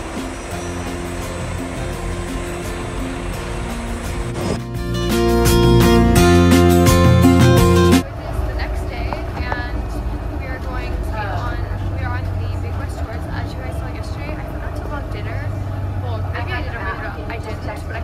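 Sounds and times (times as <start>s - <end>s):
bus engine rumbling: 0.0s - 18.0s
voices talking: 8.0s - 18.0s.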